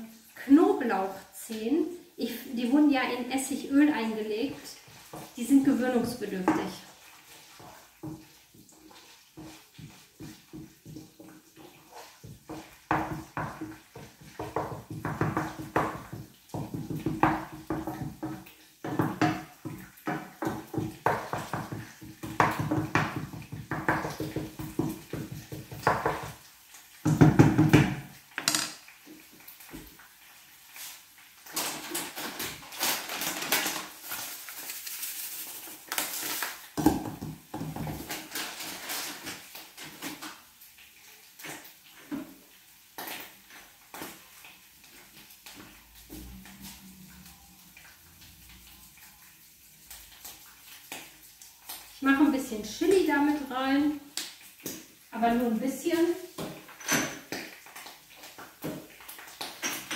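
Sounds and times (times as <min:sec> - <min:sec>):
sesame seeds frying in oil: 0:00.0 - 0:59.9
wooden spoon scraping a frying pan: 0:03.2 - 0:26.5.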